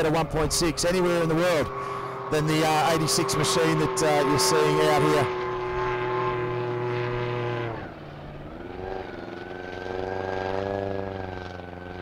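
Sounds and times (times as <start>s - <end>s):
racing boat engine high revs: 0.0s - 12.0s.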